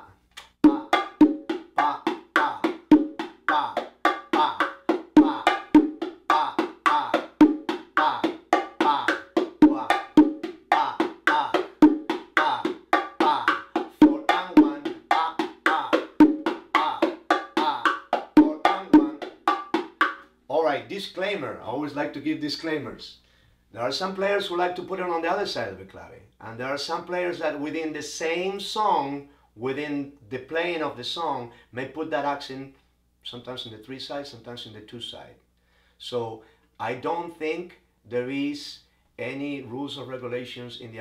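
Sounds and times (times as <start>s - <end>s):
bongo drums played by hand: 0.4s - 20.2s.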